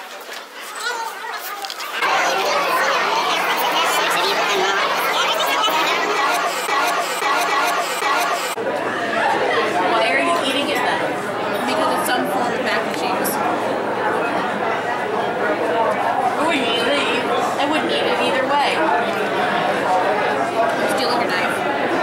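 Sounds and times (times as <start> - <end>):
chatter of many voices: 0.0 - 22.0.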